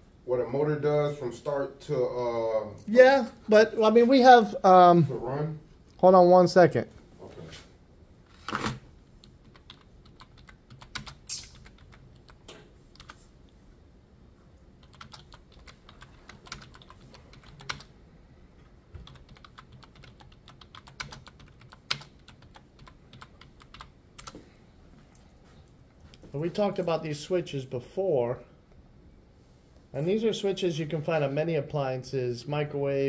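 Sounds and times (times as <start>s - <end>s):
computer keyboard typing: 9.2s - 13.2s, 14.8s - 17.9s, 18.9s - 24.4s.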